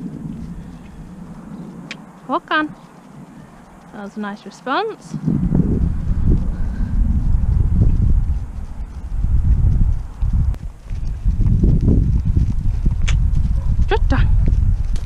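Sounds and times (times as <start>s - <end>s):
loud low rumble: 0.0s - 3.9s, 5.1s - 15.0s
hoofbeats on grass: 0.0s - 15.0s.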